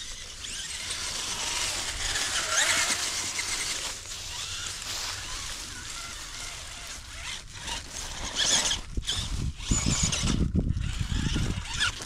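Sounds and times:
leaves crackling under tyres: 0.0s - 12.0s.

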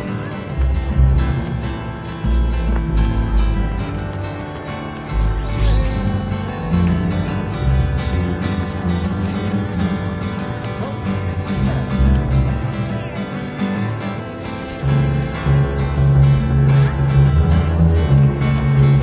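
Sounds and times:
acoustic guitar playing: 0.0s - 19.0s.

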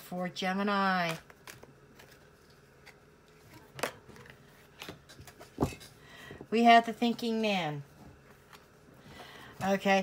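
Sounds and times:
woman speaking: 0.0s - 1.3s, 6.5s - 7.9s, 9.6s - 10.0s.

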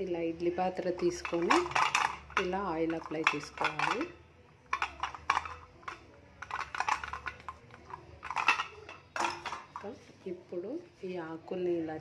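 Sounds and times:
metal plate clinking: 0.8s - 4.1s, 4.7s - 9.9s.

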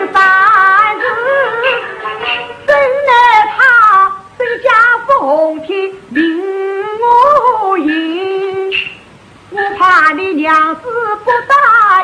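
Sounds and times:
opera singing with vibrato: 0.0s - 12.0s.

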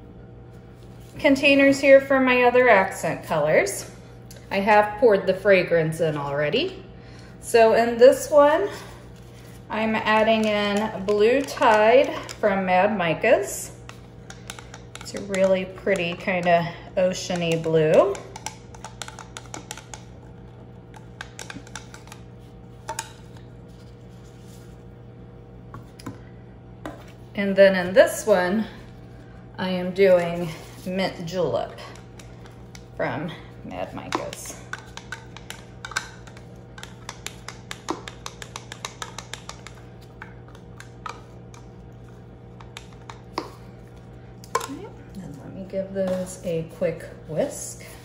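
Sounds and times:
steady low hum: 0.0s - 48.0s
stick tapping plastic cup: 10.0s - 12.4s, 13.9s - 20.1s, 20.9s - 22.2s, 22.8s - 23.2s, 34.0s - 41.7s, 42.6s - 43.6s.

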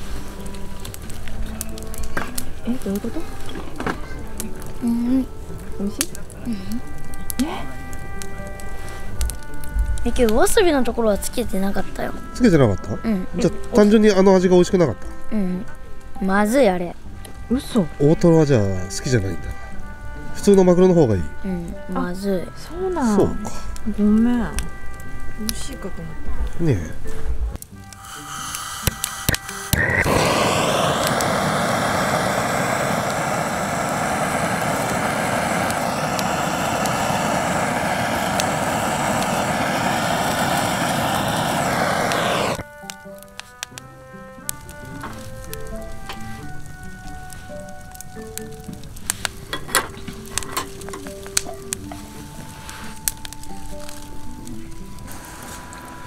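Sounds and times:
soft background music: 0.0s - 40.4s, 42.6s - 56.0s
gas torch hissing: 27.7s - 43.3s, 45.1s - 56.0s.

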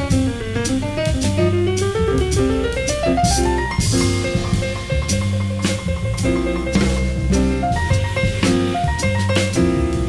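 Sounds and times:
bass line: 0.0s - 10.0s
drum kit and cymbal strikes: 0.0s - 10.0s
piano: 0.0s - 10.0s.

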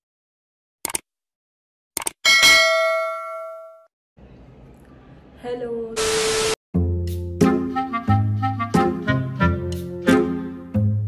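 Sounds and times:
bell-like notification ding: 2.3s - 3.9s.

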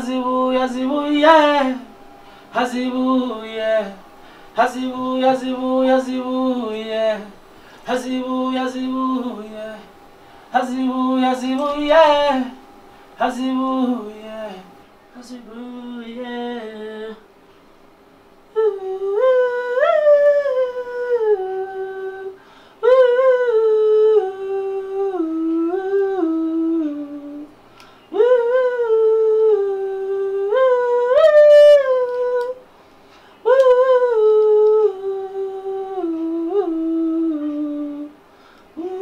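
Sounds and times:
person humming a melody: 18.5s - 32.6s, 33.4s - 38.2s, 38.8s - 39.0s.

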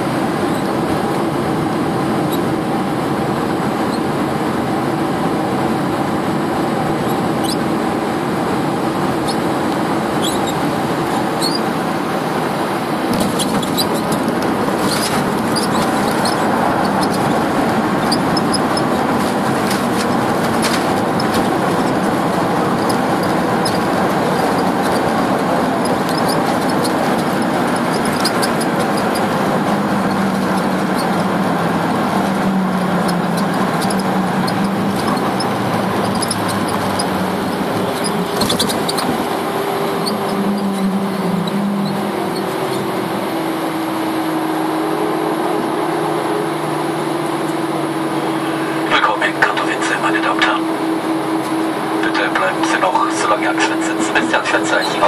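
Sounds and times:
airliner engines and wheels roaring: 0.0s - 55.0s.

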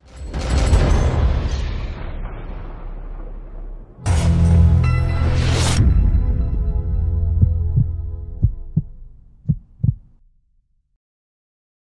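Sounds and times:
heartbeat-like double thumps: 7.3s - 10.2s.

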